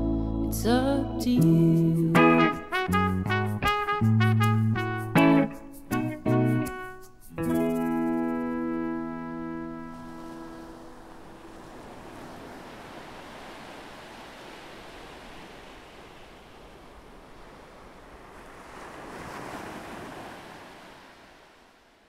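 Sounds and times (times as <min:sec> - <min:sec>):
sea waves washing onto beach: 0:09.6 - 0:22.0.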